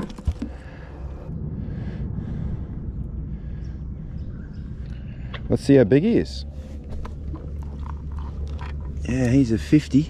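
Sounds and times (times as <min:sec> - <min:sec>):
wind on microphone: 0:00.0 - 0:04.8.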